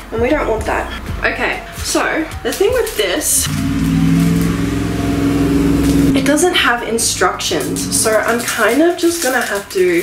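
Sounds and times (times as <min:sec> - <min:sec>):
low drone of held tones: 0:00.0 - 0:09.0.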